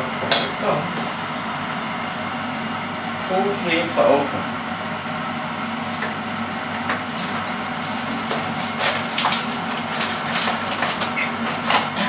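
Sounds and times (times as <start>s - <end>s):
appliance hum: 0.0s - 12.0s.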